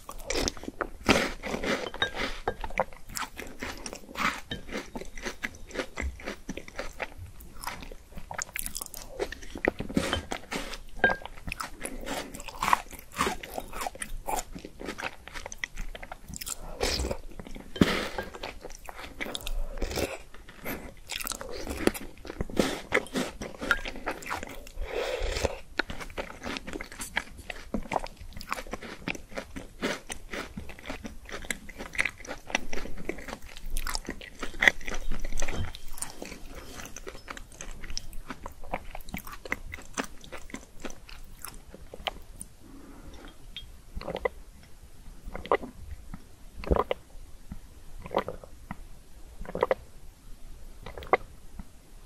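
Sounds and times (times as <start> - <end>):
crunching and chewing ice: 0.0 - 42.5, 44.0 - 44.4, 50.8 - 51.3
wet mouth sounds: 46.6 - 47.0, 49.4 - 49.8.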